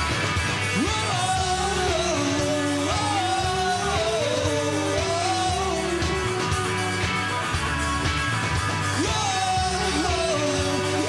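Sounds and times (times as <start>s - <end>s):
indie pop band playing live: 0.0s - 11.0s.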